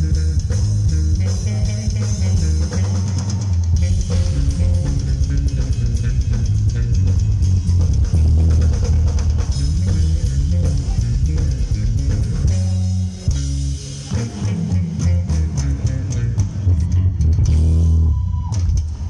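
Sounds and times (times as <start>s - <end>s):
drum kit beat: 0.0s - 19.0s
electric bass guitar: 0.0s - 19.0s.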